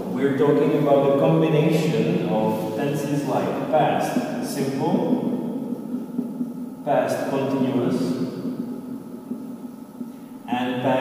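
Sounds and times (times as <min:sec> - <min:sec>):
man's voice: 0:00.0 - 0:05.3, 0:06.9 - 0:08.1, 0:10.5 - 0:11.0
steady low hum: 0:00.0 - 0:11.0.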